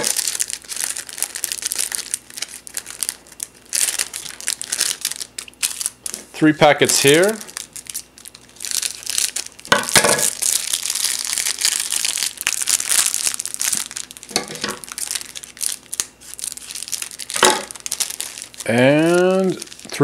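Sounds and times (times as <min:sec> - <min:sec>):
plastic packaging crinkling: 0:00.0 - 0:20.0.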